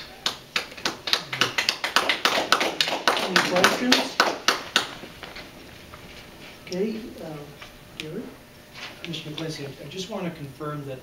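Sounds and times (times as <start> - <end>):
people clapping: 0.0 - 5.4.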